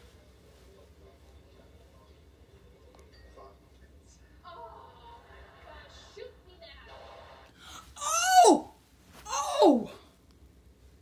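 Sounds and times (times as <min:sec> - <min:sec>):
person crying out high-pitched: 0:07.9 - 0:08.7, 0:09.3 - 0:10.0.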